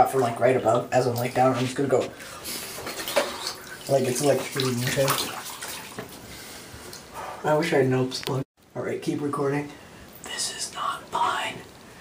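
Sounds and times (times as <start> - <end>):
water sloshing in bathtub: 1.0 - 7.1
small water splashes: 2.1 - 6.3.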